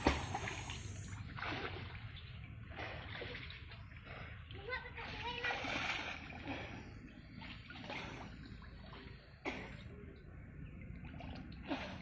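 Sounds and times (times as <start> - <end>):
water splashing from swimming: 0.0 - 12.0.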